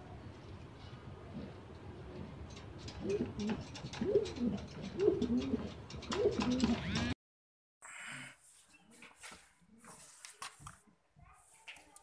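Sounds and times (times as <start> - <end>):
pigeon cooing: 3.0 - 6.8.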